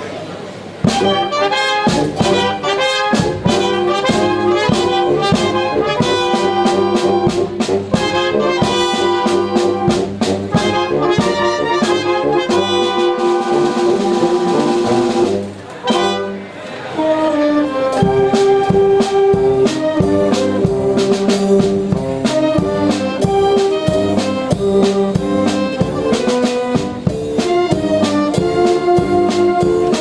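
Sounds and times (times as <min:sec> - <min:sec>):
wind band playing: 0:00.6 - 0:30.0.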